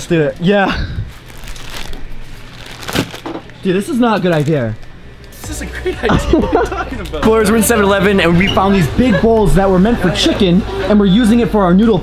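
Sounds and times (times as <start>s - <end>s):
plastic packaging rustling: 0.0s - 4.9s.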